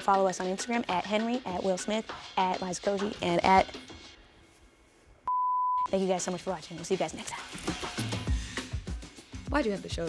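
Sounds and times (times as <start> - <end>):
censor bleep tone: 5.3 - 5.9.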